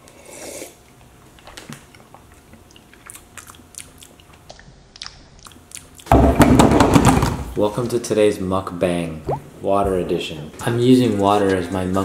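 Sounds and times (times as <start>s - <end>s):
mouth clicks and swallowing: 9.3s - 9.5s
person gulping water: 9.3s - 9.5s.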